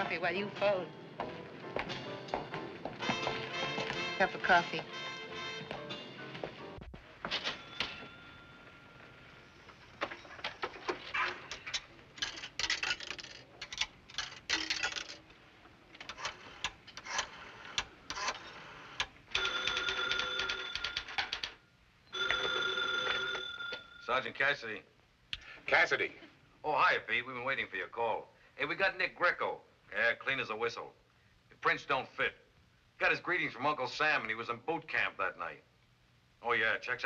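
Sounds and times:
telephone bell ringing: 7.4 - 9.2, 19.3 - 21.4, 22.1 - 24.1.

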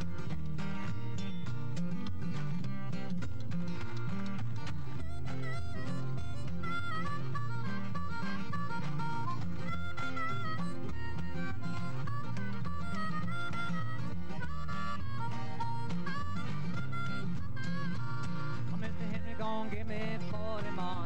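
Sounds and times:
harmonica melody: 0.0 - 21.0
strummed acoustic guitar: 0.0 - 21.0.

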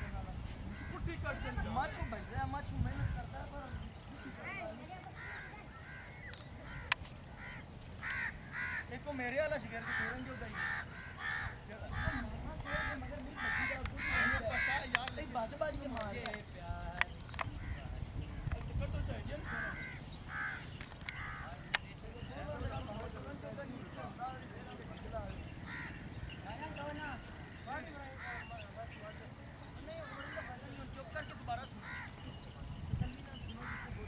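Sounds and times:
faint distant voices: 0.0 - 34.0
harsh bird calls: 2.9 - 15.4, 19.4 - 34.0
sharp clicks: 14.9 - 15.3.

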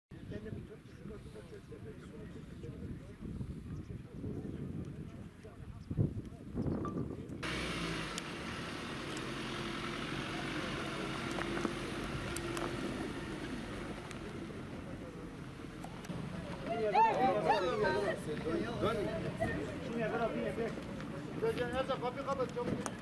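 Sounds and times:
outdoor noise: 0.1 - 23.0
van engine running: 7.4 - 16.3
crowd murmur: 8.9 - 23.0
scattered clicks: 11.2 - 12.9.

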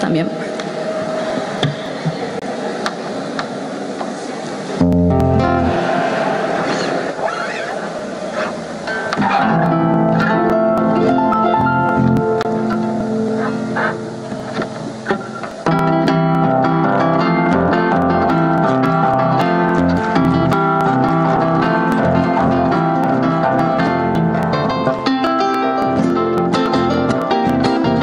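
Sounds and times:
harp and guitar folk music: 8.4 - 28.0.

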